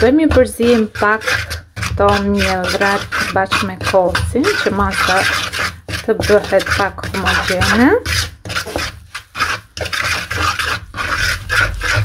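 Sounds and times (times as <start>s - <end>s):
wooden stick stirring thick batter: 0.0s - 12.0s.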